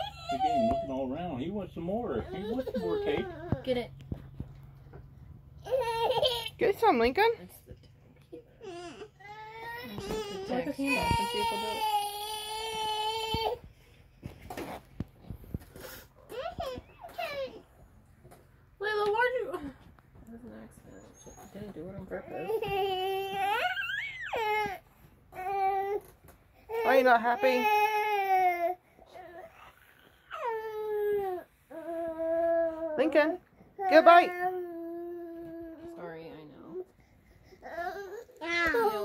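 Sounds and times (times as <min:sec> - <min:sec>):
baby whimpering: 0:37.3 - 0:39.0.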